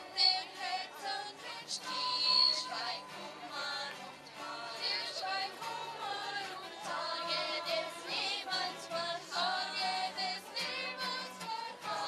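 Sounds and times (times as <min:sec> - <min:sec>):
acoustic guitar: 0:00.0 - 0:12.0
children's choir singing a carol: 0:00.0 - 0:12.0.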